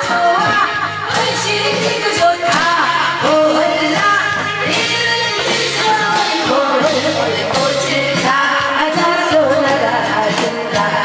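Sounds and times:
drum-backed musical accompaniment: 0.0 - 11.0
woman singing into a microphone: 0.0 - 11.0.

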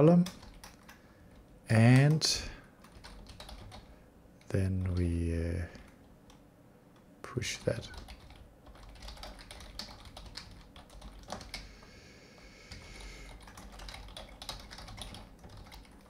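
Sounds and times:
keyboard typing: 0.2 - 2.2, 2.8 - 3.9, 7.6 - 11.7, 12.7 - 16.0.

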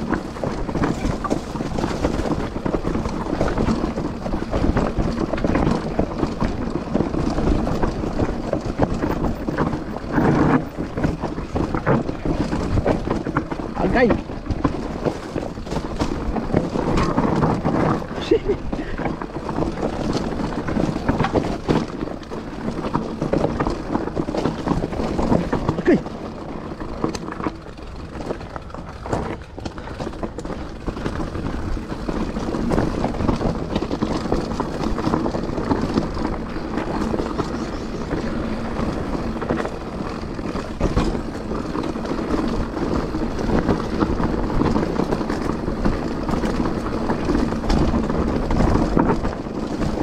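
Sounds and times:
bike rattling over bumps: 0.0 - 50.0
tyres crunching over gravel: 0.0 - 50.0.

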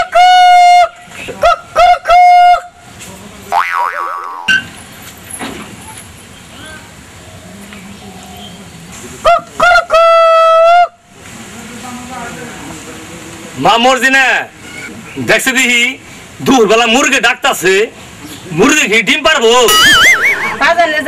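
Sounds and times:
comic boing sound effect: 3.5 - 4.6, 19.7 - 20.7.

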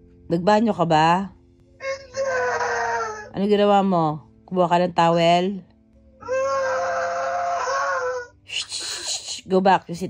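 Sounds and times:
boy wailing: 1.8 - 3.3, 6.2 - 8.3.

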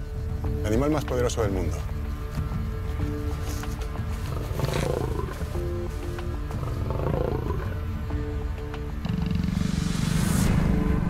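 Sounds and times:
background music with sustained tones: 0.0 - 11.0
lion roaring: 4.2 - 8.4.

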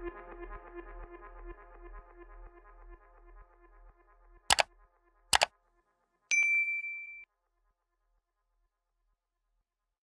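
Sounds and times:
notification bell ding: 6.3 - 7.2.

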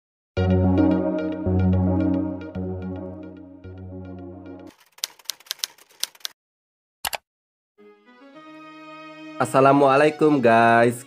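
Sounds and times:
electronic intro music: 0.4 - 4.7
keyboard typing clicks: 7.0 - 7.2.

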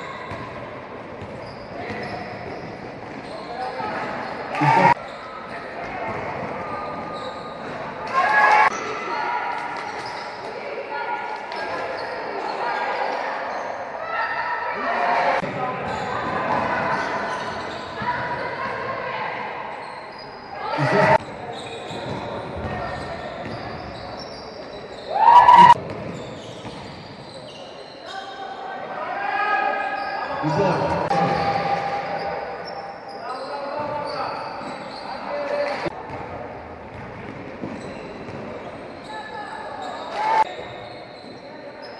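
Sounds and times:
players and spectators voices: 0.0 - 41.9
basketball bouncing on wooden court: 0.3 - 0.6, 36.1 - 36.3
loud outburst of voices: 3.8 - 5.0, 20.6 - 21.2, 25.1 - 25.8
players calling out: 4.3 - 5.2, 20.6 - 21.3, 24.9 - 25.8.

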